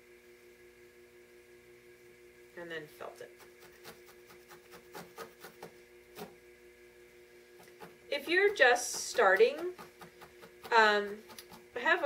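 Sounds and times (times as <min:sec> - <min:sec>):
faint steady hum: 0:00.0 - 0:12.0
felting needle jabbing: 0:07.6 - 0:11.7.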